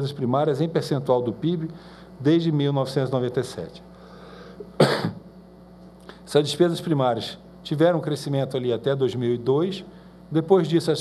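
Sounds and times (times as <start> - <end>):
person coughing: 4.6 - 5.3.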